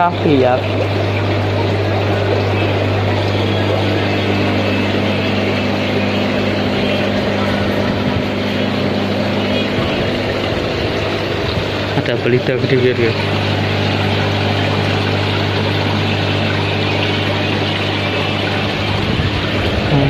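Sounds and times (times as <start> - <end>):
aquarium pumps humming: 0.0 - 20.0
water pouring and splashing: 0.0 - 20.0.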